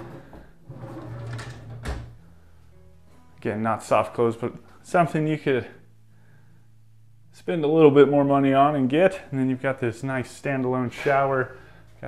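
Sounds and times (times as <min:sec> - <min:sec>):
drawer sliding on runners: 0:00.0 - 0:02.1.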